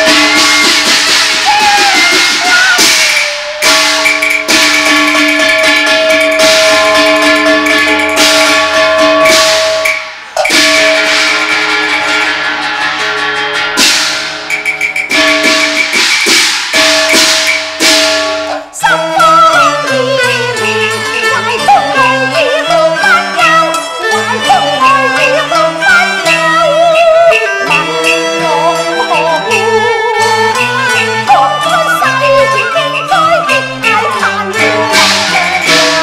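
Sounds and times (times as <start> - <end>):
held melodic notes: 0.0 - 36.0
loud crashing percussion: 0.0 - 36.0.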